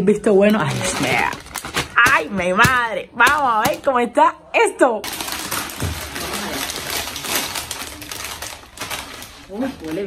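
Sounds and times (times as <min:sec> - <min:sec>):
plastic crisp bag crinkling: 0:00.6 - 0:03.9, 0:05.0 - 0:10.0.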